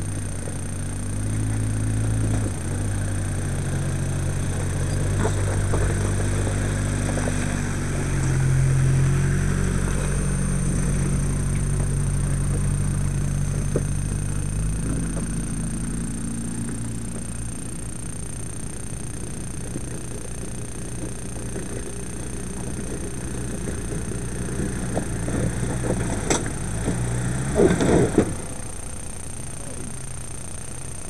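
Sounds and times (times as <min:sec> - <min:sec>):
engine running at low revs: 0:00.0 - 0:31.0.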